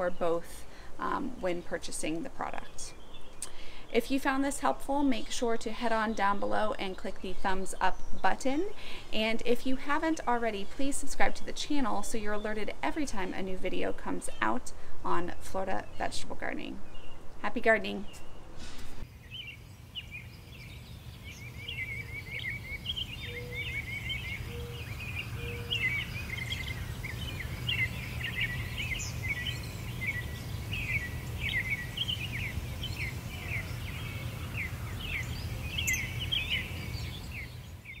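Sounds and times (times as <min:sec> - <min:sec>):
small birds chirping: 0:01.1 - 0:04.0, 0:19.0 - 0:38.0.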